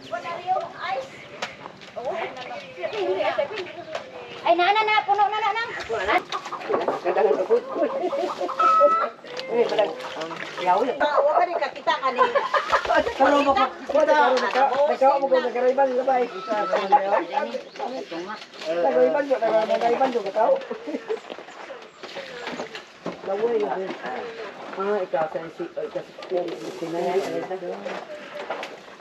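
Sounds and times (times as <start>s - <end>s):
people talking: 2.0s - 21.2s
chickens clucking: 5.1s - 11.3s, 12.4s - 26.9s.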